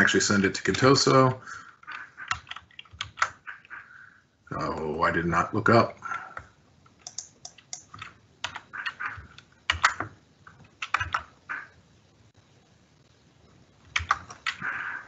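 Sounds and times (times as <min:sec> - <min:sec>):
computer keyboard typing: 0:01.8 - 0:03.4, 0:07.0 - 0:11.4, 0:13.9 - 0:14.6.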